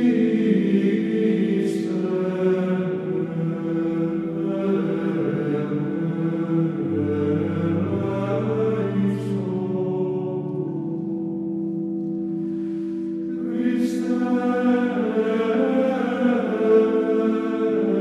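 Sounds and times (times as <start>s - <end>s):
slow choral chant: 0.0s - 18.0s.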